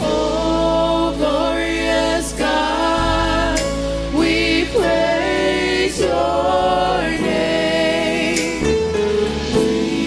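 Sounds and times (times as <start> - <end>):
group singing worship chorus: 0.0 - 10.0
live band accompaniment: 0.0 - 10.0.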